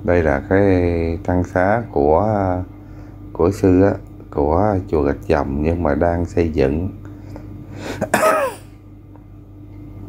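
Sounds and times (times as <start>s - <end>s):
man clearing his throat: 7.9s - 8.7s.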